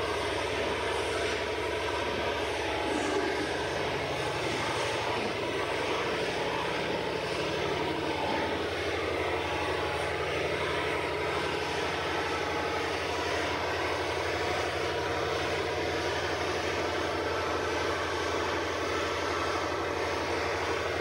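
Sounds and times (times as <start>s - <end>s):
low pulsing mechanical drone: 0.0s - 21.0s.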